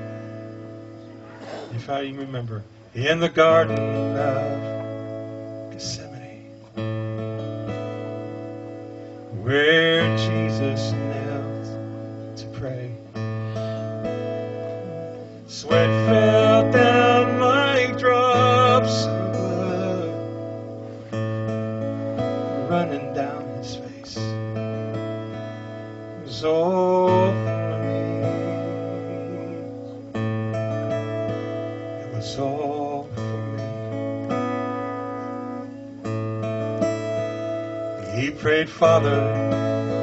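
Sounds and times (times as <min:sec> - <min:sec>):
acoustic guitar strummed chords: 0:00.0 - 0:40.0.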